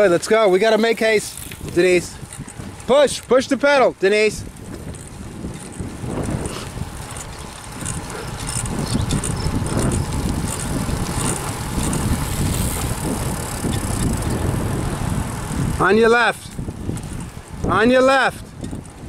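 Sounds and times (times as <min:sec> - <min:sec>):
bicycle tyres rolling on asphalt: 0:00.0 - 0:19.0
wind rushing over microphone: 0:00.0 - 0:19.0.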